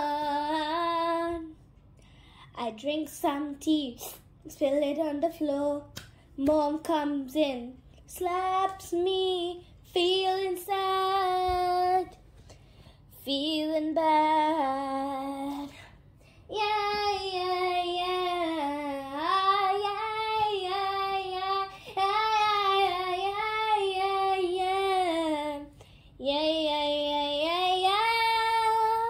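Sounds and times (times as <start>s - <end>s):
girl singing: 0.0s - 1.7s, 2.4s - 12.3s, 13.1s - 29.0s.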